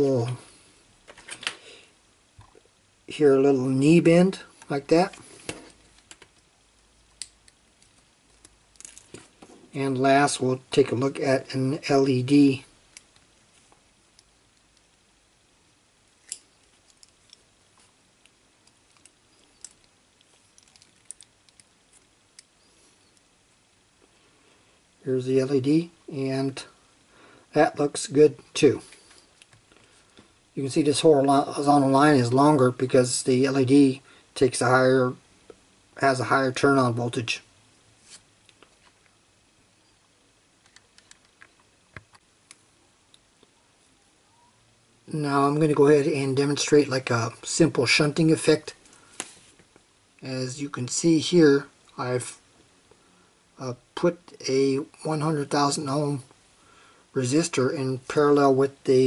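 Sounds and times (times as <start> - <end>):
test-lead clips clicking: 7.0 - 9.2.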